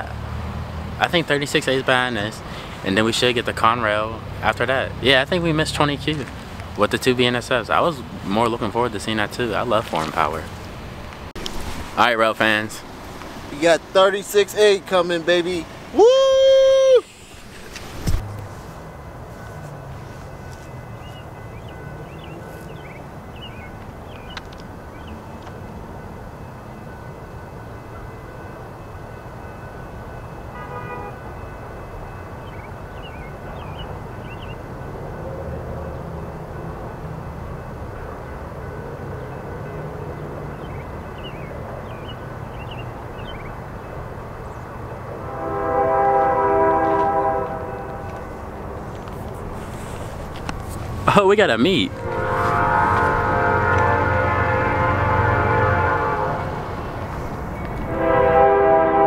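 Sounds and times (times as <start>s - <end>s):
locomotive rumble: 0.0s - 59.0s
train horn: 30.5s - 32.1s, 45.1s - 48.4s, 51.7s - 56.8s, 57.8s - 59.0s.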